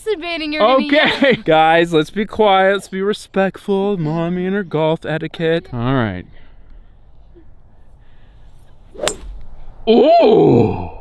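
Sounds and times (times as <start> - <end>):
golf club striking ball: 8.6 - 9.7.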